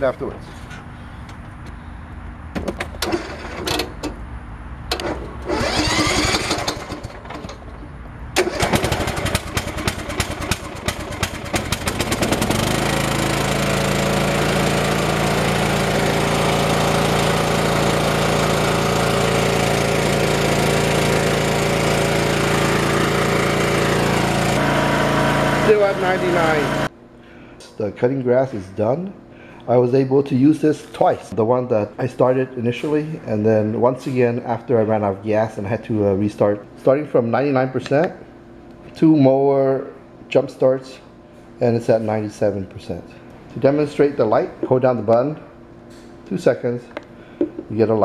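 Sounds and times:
lawn mower engine running: 0:02.7 - 0:04.2, 0:04.9 - 0:26.9
lawn mower engine cranking: 0:02.8 - 0:04.2, 0:04.9 - 0:07.8, 0:08.4 - 0:26.9.

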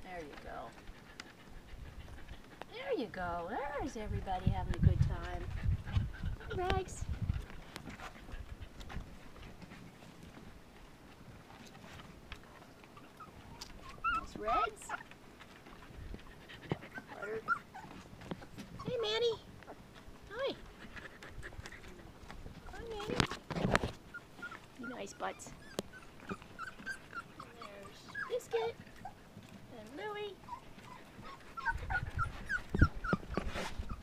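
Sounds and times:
puppies pattering and rustling: 0:00.0 - 0:34.0.

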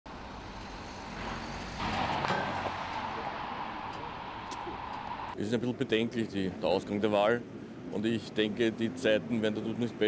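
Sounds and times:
street traffic hum: 0:00.1 - 0:10.0.

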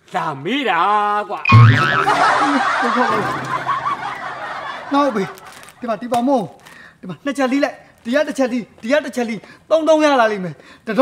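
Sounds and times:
people chuckling: 0:01.9 - 0:05.8.

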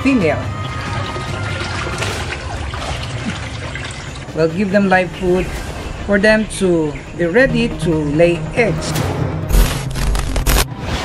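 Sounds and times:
water trickling and splashing: 0:00.0 - 0:07.9.

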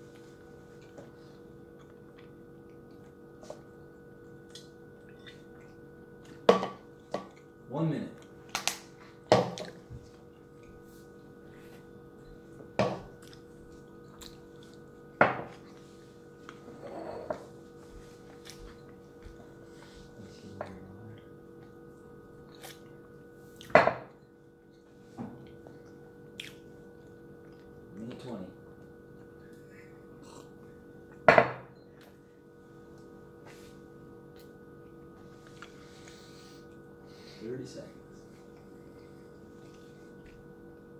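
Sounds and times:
steady hum: 0:00.0 - 0:40.9.

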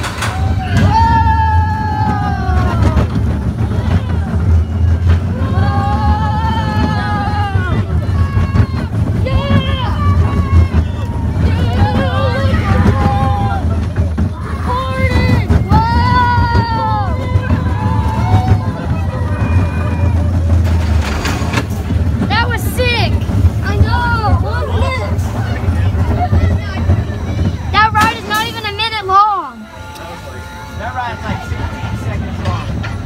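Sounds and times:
riders screaming: 0:00.0 - 0:21.0
roller coaster rumbling on track: 0:00.0 - 0:33.0.

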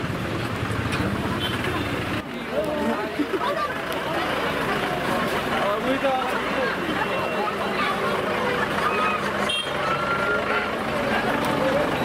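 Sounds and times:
crowd chattering: 0:00.0 - 0:12.0
traffic and engines running: 0:00.0 - 0:12.0.

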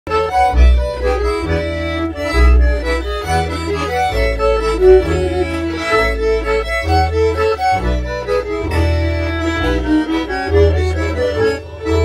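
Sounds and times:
button accordion folk tune: 0:00.1 - 0:12.0
deep bass notes: 0:00.1 - 0:12.0.

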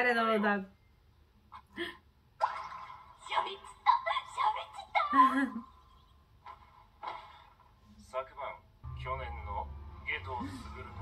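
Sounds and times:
girl speaking excitedly: 0:03.3 - 0:05.2.

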